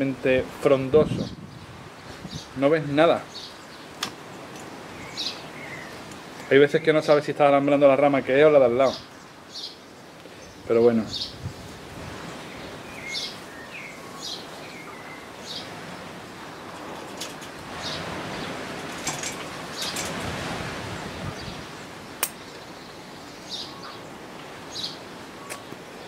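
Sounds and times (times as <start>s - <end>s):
steady outdoor hiss: 0.0s - 26.0s
small birds chirping: 1.0s - 26.0s
sharp click: 22.2s - 22.4s.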